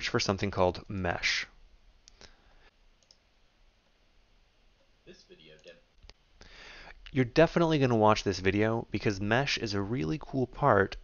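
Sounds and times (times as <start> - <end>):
computer mouse click: 3.0 - 3.2.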